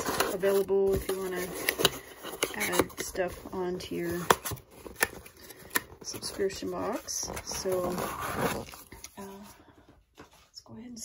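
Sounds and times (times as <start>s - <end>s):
cardboard box rustling and scraping: 6.0s - 9.3s.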